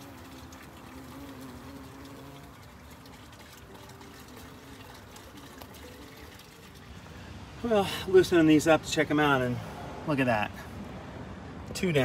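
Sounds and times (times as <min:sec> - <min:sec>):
water hissing from spray: 0:00.0 - 0:03.9
bumblebees buzzing: 0:00.0 - 0:05.9.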